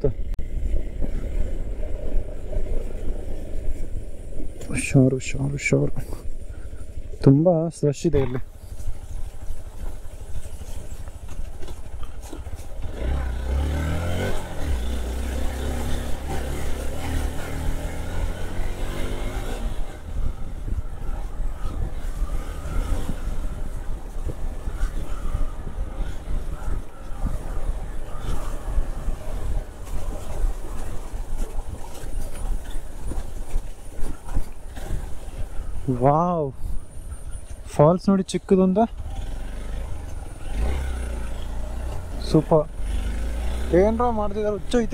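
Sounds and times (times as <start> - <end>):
motorcycle engine revving: 8.2 - 36.0, 36.6 - 44.9.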